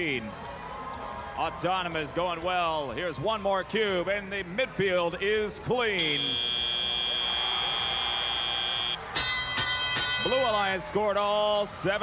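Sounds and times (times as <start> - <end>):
arena crowd noise: 0.0 - 12.0
high-pitched electronic buzzer tone: 6.0 - 9.0.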